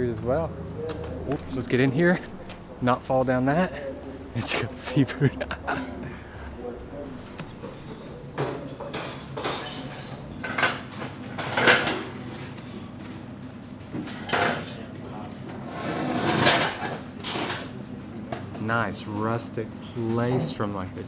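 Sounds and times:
metal chair scraping: 0:15.6 - 0:17.7.

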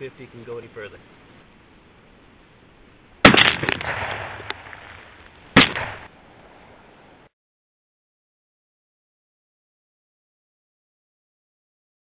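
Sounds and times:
rifle shots: 0:03.2 - 0:06.1.

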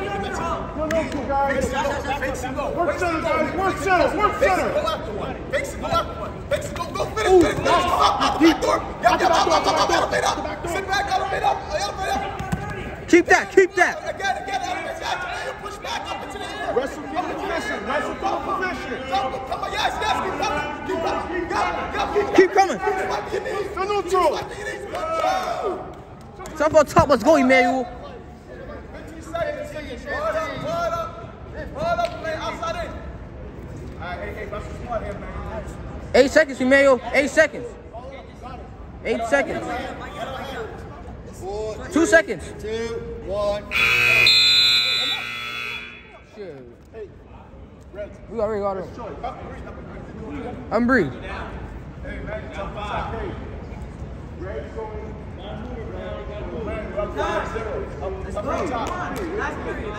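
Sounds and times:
people talking and calling out: 0:00.0 - 0:59.9
voices: 0:39.1 - 0:48.2
scoreboard buzzer: 0:43.7 - 0:46.2.

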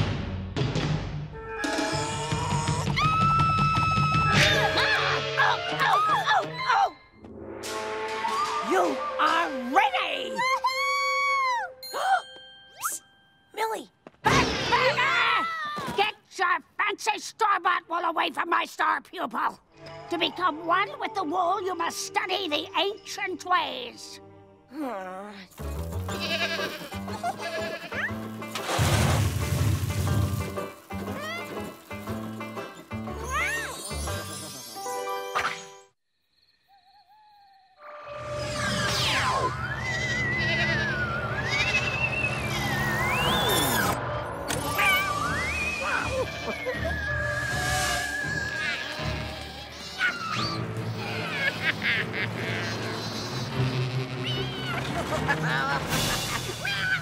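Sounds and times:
cartoon soundtrack music: 0:00.0 - 0:12.2, 0:19.8 - 0:35.9, 0:36.8 - 0:57.0
high animal-like cries: 0:36.7 - 0:43.0, 0:45.8 - 0:54.9.

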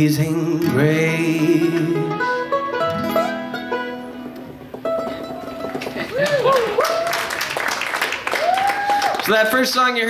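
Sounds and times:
acoustic string band: 0:00.0 - 0:08.2
soft plucked notes: 0:00.5 - 0:06.1.

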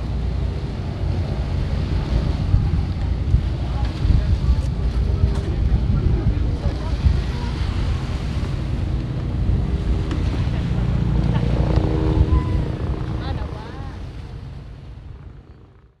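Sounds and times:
boat motor drone: 0:00.0 - 0:15.9
wind rumbling on microphone: 0:00.0 - 0:15.9.

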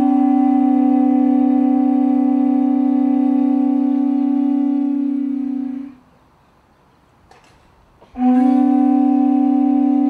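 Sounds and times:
conch shell trumpet note: 0:00.0 - 0:06.1, 0:08.0 - 0:10.0.

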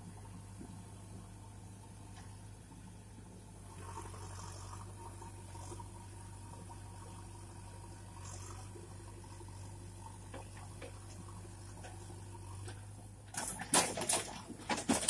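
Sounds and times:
distant diesel engine running: 0:00.0 - 0:15.0.

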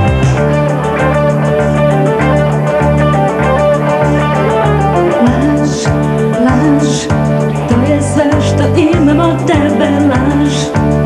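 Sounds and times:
drums: 0:00.0 - 0:11.0
electric guitar: 0:00.0 - 0:11.0
pulsing bass line: 0:00.0 - 0:11.0.

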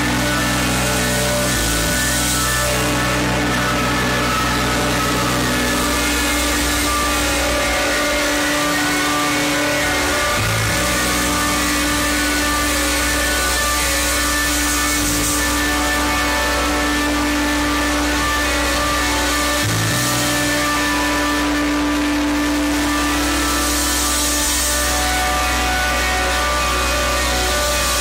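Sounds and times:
live band playing loud music: 0:00.0 - 0:28.0.

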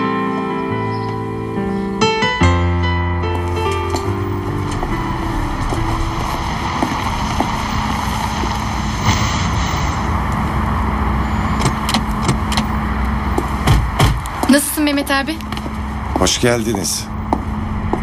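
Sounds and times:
soft piano music: 0:00.0 - 0:08.7
street traffic noise: 0:03.2 - 0:18.0
car engine running: 0:03.4 - 0:18.0.

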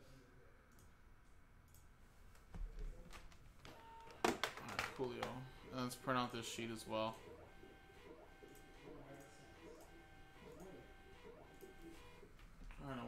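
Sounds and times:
man speaking: 0:04.6 - 0:07.8, 0:12.7 - 0:13.0.

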